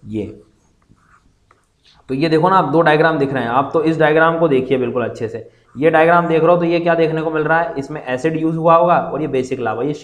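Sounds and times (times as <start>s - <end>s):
pen scratching on paper: 0.6s - 1.6s.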